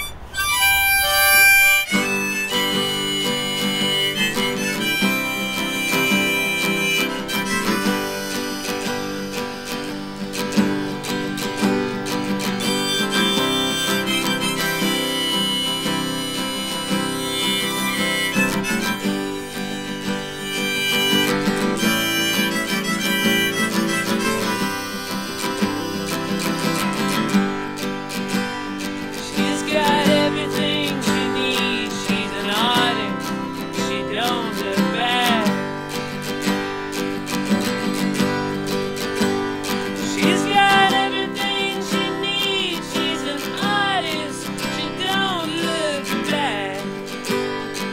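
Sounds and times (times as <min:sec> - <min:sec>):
harmonica playing: 0:00.0 - 0:47.9
strummed acoustic guitar: 0:00.0 - 0:47.9.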